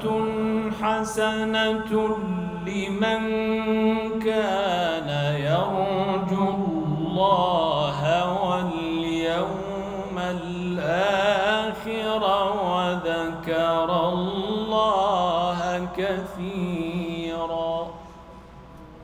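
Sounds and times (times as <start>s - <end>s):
man reciting melodically: 0.0s - 18.1s.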